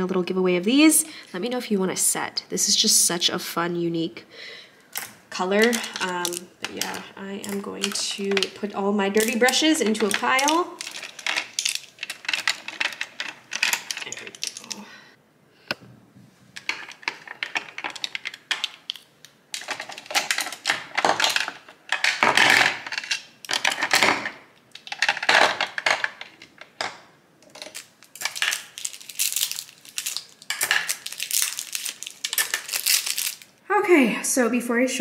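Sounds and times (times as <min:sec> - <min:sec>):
brushes clattering in plastic cups: 0:05.0 - 0:14.6, 0:19.6 - 0:33.5.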